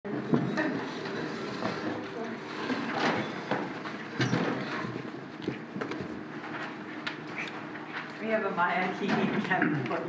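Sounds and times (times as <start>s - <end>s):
chairs being moved: 0.3s - 8.1s.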